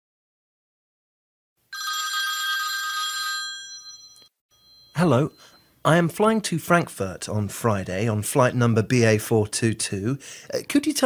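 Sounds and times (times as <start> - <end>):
telephone ringing: 1.7 - 5.8.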